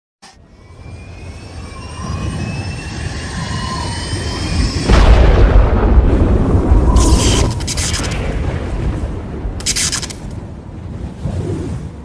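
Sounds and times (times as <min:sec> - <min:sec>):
faint high gliding tones: 0:00.3 - 0:05.0.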